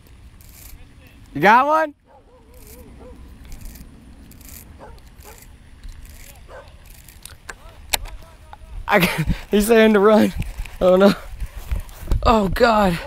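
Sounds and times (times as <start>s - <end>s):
small clicks and rattles: 0.0s - 1.4s, 2.5s - 8.3s
wind rumble on microphone: 2.0s - 13.0s.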